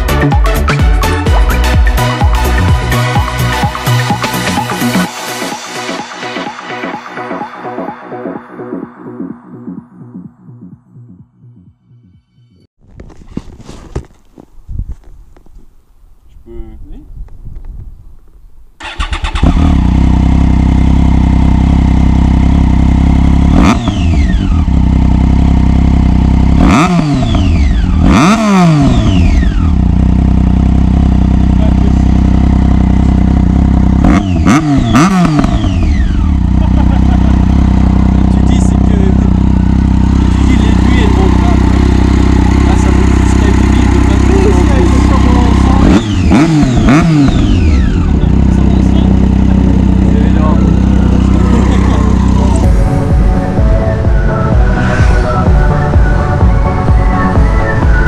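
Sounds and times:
motorcycle throttle revving: 18.8 - 57.9
motorcycle engine idling: 18.8 - 58.0.

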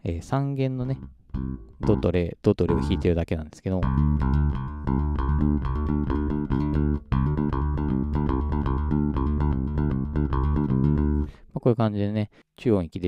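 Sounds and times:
electric bass plucked notes: 0.2 - 11.4.

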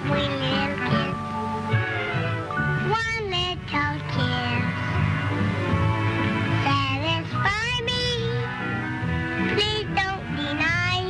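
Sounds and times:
high voice singing: 0.0 - 1.2, 2.8 - 4.9
orchestral accompaniment: 0.0 - 7.2.

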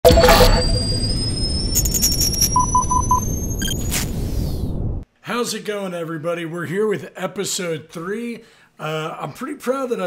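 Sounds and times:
short beeps: 0.0 - 3.9
glitchy stutter: 0.0 - 4.2
rising high tones: 0.0 - 4.9.

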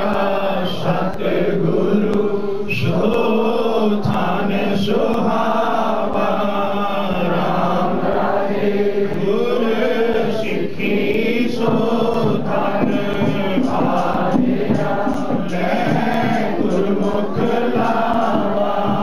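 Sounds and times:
congregation chanting: 0.0 - 19.0.

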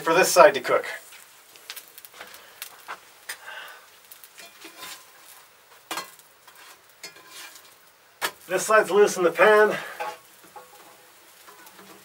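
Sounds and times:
pancake sizzling in oil: 0.0 - 12.0
light clicks and scrapes: 4.4 - 5.4, 6.0 - 7.8.

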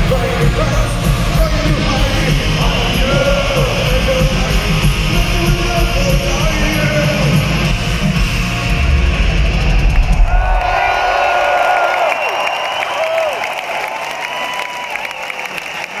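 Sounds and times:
metal band playing loud: 0.0 - 11.7
crowd cheering and shouting: 0.0 - 16.0.

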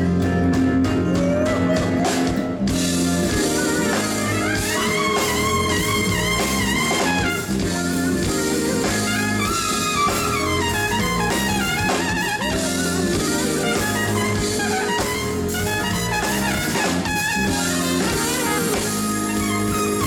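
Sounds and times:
drum kit: 0.0 - 20.0
electric bass: 0.0 - 20.0
trumpet solo: 2.8 - 20.0.

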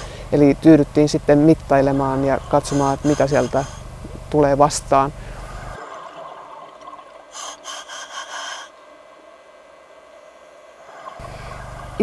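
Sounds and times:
faint regulator hiss: 0.0 - 12.0
exhaled bubbles underwater: 5.5 - 7.4, 10.8 - 12.0.

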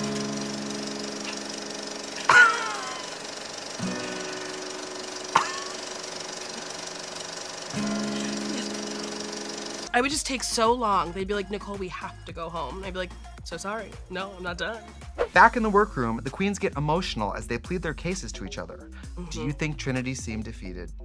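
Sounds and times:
music of long held chords: 0.0 - 10.0.

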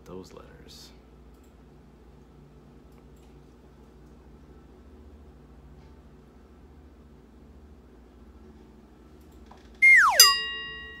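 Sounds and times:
whistle tone sliding down: 9.8 - 10.5
bell-like chime: 10.2 - 11.0.

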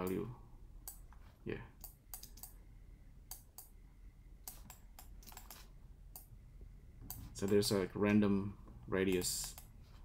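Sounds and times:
mouse and keyboard clicks: 1.8 - 2.6, 4.4 - 6.3, 9.1 - 9.7.

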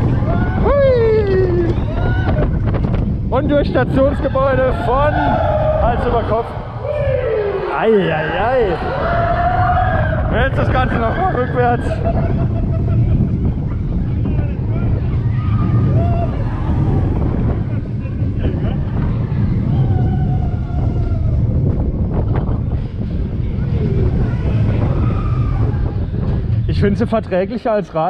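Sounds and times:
roller coaster rumbling on track: 0.0 - 28.0
wind buffeting microphone: 0.0 - 28.0.

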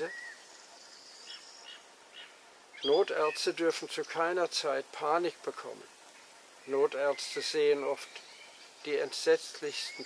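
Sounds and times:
faint birdsong: 0.0 - 10.0.

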